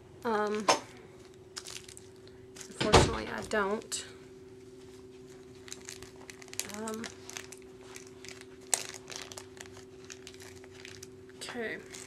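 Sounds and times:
steady low hum: 0.0 - 12.0
plastic packaging crinkling: 1.2 - 4.0, 5.3 - 12.0.

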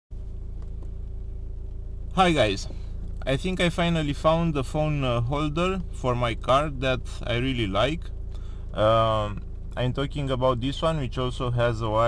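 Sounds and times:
car engine idling: 0.1 - 12.0.

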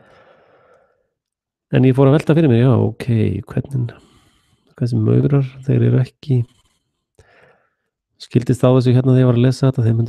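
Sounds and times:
man talking: 1.7 - 4.1, 4.8 - 6.6, 8.2 - 10.0.

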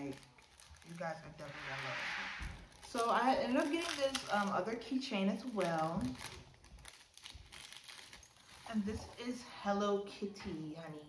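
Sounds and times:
packaging crinkling and rustling: 0.0 - 1.3, 2.7 - 9.5.

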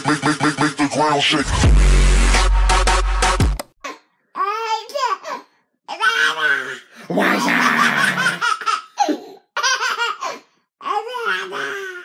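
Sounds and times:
baby laughing: 5.9 - 12.0
man laughing: 7.1 - 8.4.

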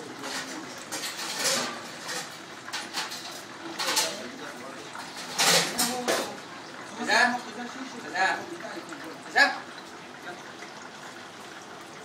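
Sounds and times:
kitchen hiss and hum: 0.0 - 12.0.

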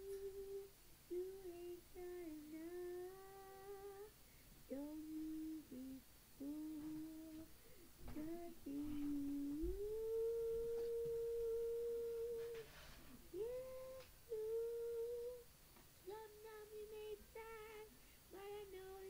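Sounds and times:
young voice humming: 0.0 - 4.1, 4.7 - 7.5, 8.1 - 12.7, 13.3 - 15.5.

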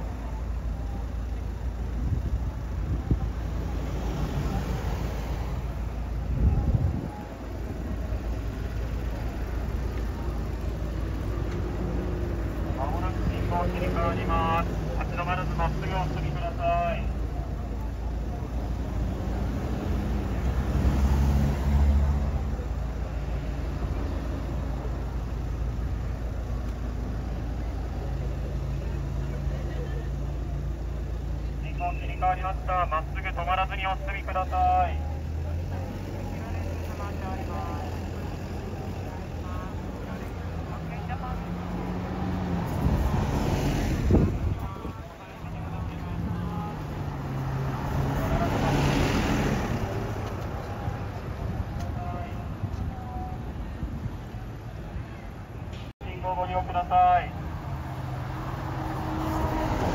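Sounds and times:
bus diesel engines idling: 0.0 - 59.9.

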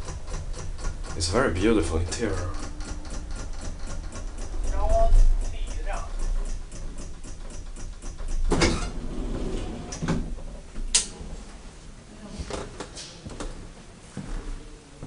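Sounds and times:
rapid ticking: 0.0 - 8.5
elevator low rumble: 0.0 - 15.0
sharp knocks: 2.1 - 8.8.

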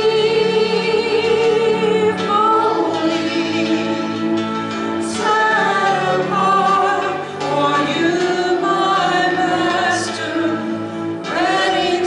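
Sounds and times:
women singing worship song: 0.0 - 4.3, 5.0 - 12.0.

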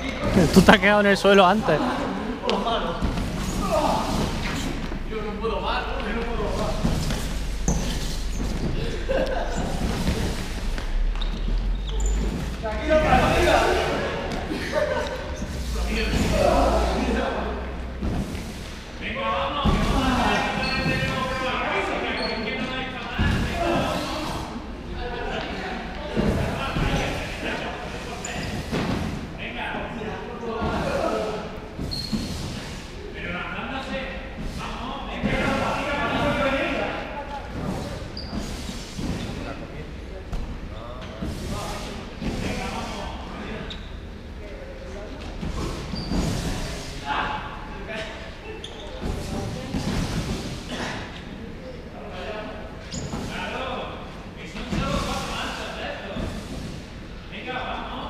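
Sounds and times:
players calling out echoing: 0.1 - 6.5.

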